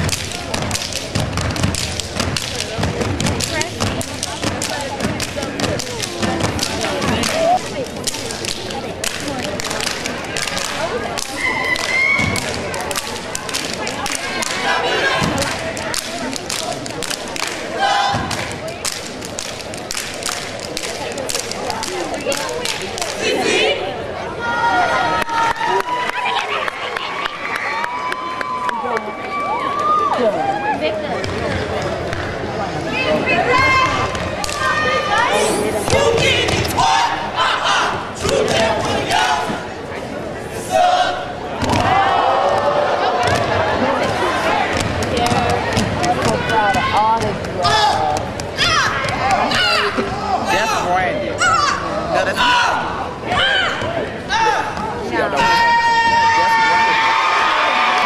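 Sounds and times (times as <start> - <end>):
loud shouted voices: 0.0 - 19.3, 20.9 - 31.7, 32.6 - 58.0
stomping and clapping: 0.0 - 23.3, 34.0 - 34.7
crowd yelling and cheering: 0.0 - 58.0.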